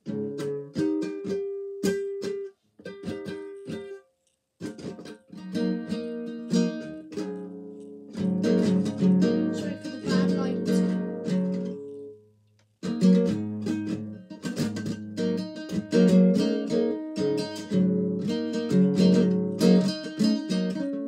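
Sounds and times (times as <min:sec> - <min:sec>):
classical guitar strummed and plucked: 0:00.0 - 0:21.0.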